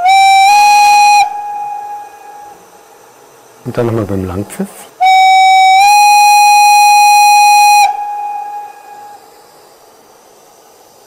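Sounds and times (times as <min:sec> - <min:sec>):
steam whistle blast: 0:00.0 - 0:02.9, 0:05.0 - 0:09.7.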